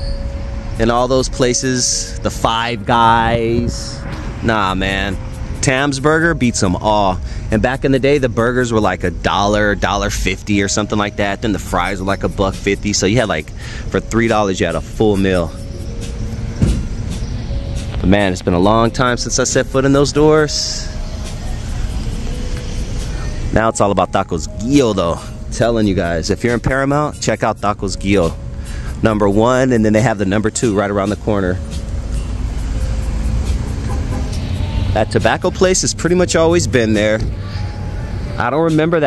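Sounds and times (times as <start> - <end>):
car engines: 0.0 - 39.0
faint music: 0.0 - 39.0
traffic rumble: 0.0 - 39.0
motor vehicle passing: 0.1 - 8.4, 9.1 - 23.6, 28.6 - 38.4
low thump: 16.6 - 17.2.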